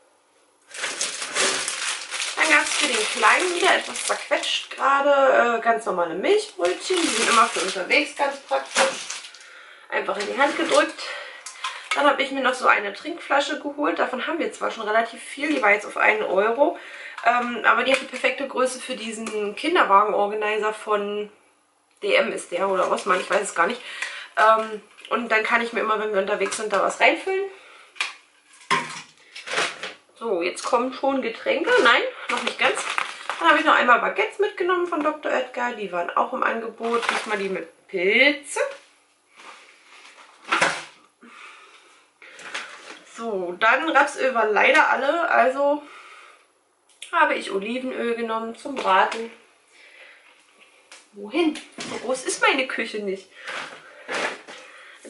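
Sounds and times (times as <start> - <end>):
groceries clattering and knocking: 0.7 - 4.6, 6.6 - 9.4, 28.0 - 30.0, 31.7 - 33.8, 36.8 - 37.6
plastic bag crinkling: 0.7 - 4.9, 6.3 - 12.1, 22.6 - 24.8, 31.7 - 33.9, 36.8 - 37.6.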